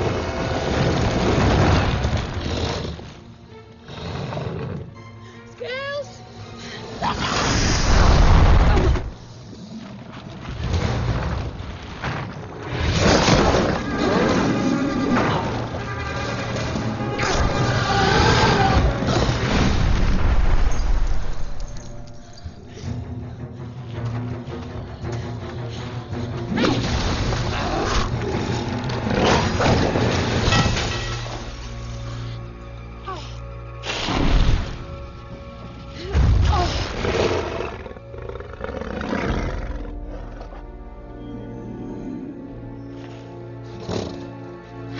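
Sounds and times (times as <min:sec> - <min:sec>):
orchestral film score: 0:00.0 - 0:44.9
dragon roaring: 0:17.4 - 0:19.4.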